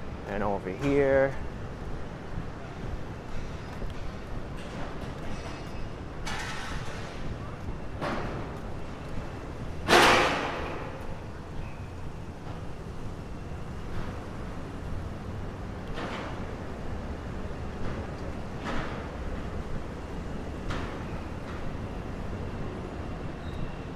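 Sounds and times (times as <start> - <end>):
city street traffic: 0.0 - 23.9.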